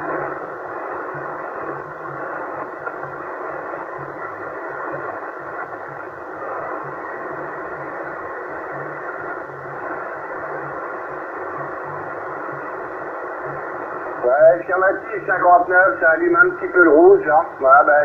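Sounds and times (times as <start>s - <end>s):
radio static hiss: 0.0s - 18.0s
man's voice over radio: 14.2s - 18.0s.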